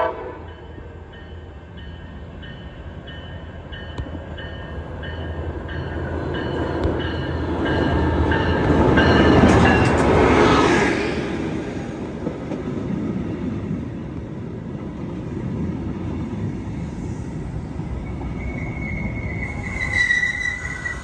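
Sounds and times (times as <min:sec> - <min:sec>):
locomotive horn: 0:00.0 - 0:00.6
locomotive bell ringing: 0:00.4 - 0:10.0.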